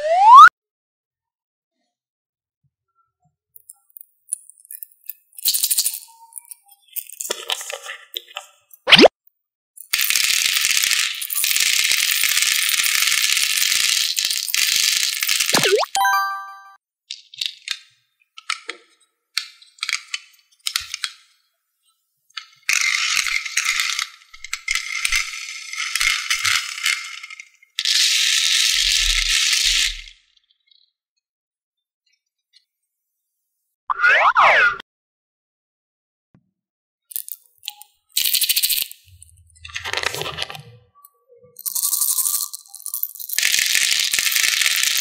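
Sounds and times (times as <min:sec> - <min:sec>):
candy balls rattling into tray: 0:10.0 - 0:15.8, 0:41.6 - 0:45.0.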